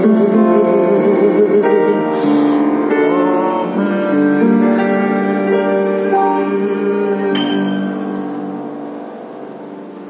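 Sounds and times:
piano chord ringing: 1.9s - 10.0s.

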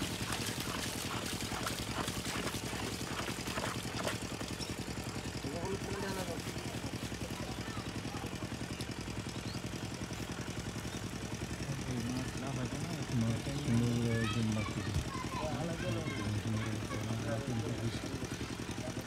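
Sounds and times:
water gushing and splashing: 0.0s - 4.6s
small engine water pump running: 0.0s - 19.0s.

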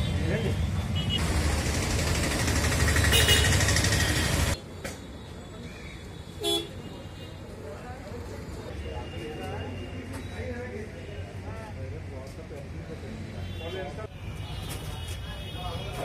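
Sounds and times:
street traffic noise: 0.0s - 16.0s
vehicle horns honking: 3.1s - 4.6s, 6.4s - 7.4s.

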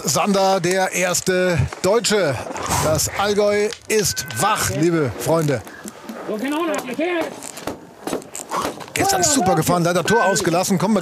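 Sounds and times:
man commentating: 0.0s - 5.6s, 9.0s - 11.0s.

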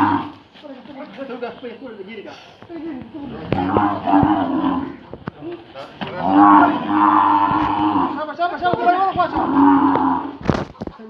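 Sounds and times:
bull bellowing: 0.0s - 0.4s, 3.2s - 5.1s, 6.0s - 10.4s.

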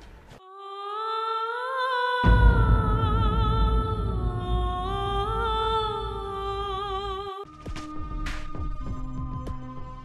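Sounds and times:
film soundtrack music: 2.2s - 10.0s.

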